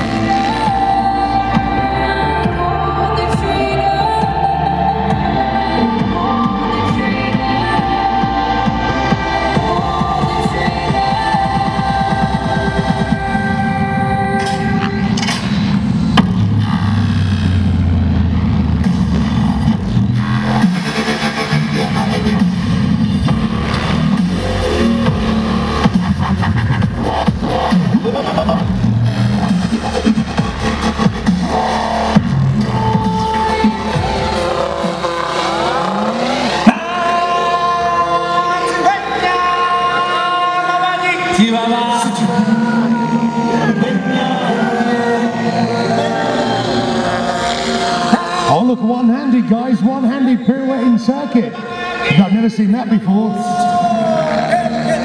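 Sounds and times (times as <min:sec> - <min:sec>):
loud music: 0:00.0 - 0:55.0.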